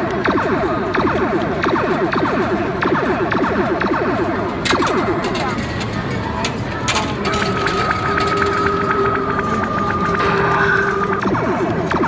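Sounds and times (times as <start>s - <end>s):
electronic game sounds and music: 0.0s - 12.0s.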